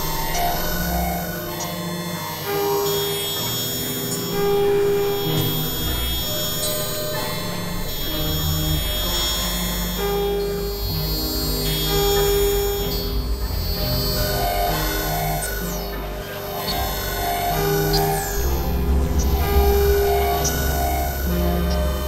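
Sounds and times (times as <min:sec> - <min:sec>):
electronic synthesizer drones: 0:00.0 - 0:22.0.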